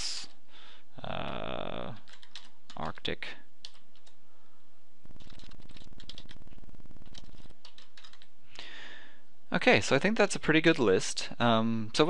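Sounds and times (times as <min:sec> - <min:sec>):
rapid keyboard typing: 0:01.2 - 0:04.2, 0:05.1 - 0:08.3.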